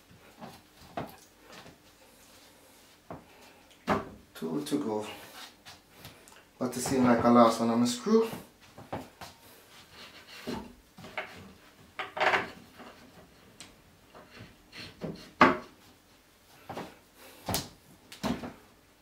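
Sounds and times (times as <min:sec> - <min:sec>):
knocks of shelving being handled: 0:03.9 - 0:04.2.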